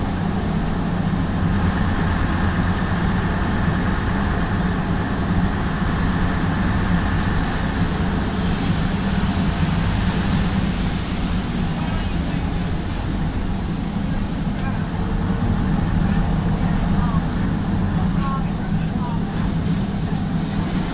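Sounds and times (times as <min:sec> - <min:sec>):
bus diesel engine droning: 0:00.0 - 0:20.9.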